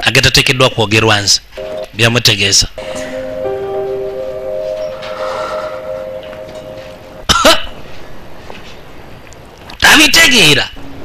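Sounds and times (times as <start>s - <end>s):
soft background score: 1.6s - 8.4s.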